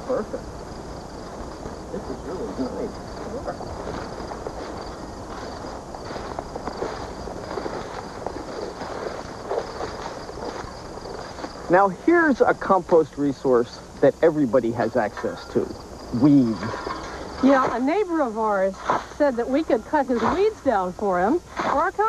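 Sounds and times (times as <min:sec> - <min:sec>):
insects chirring: 0:00.0 - 0:22.0
people wading through weeds: 0:01.3 - 0:13.1.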